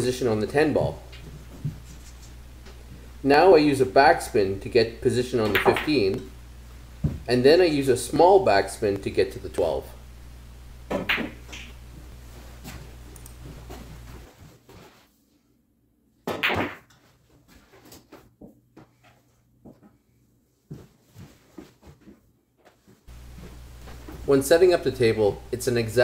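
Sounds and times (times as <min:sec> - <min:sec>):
pool balls clacking: 0:05.3 - 0:06.3, 0:10.9 - 0:11.8, 0:16.3 - 0:17.0.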